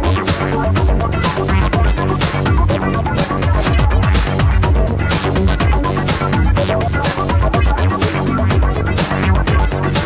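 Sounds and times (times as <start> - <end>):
psychedelic electronic music: 0.0 - 10.0.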